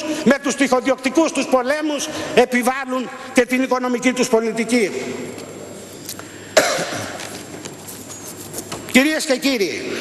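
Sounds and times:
person coughing: 6.5 - 7.3.

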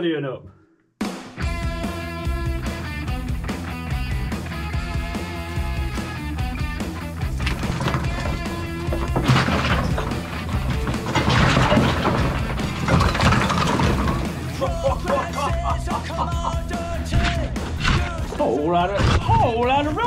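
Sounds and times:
rock music: 1.0 - 18.4
rock chunks crashing onto rubble: 7.2 - 15.7.

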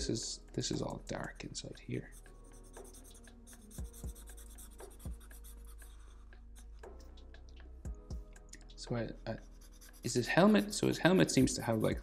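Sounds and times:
marker scratching on paper: 2.0 - 7.2, 9.3 - 12.0.

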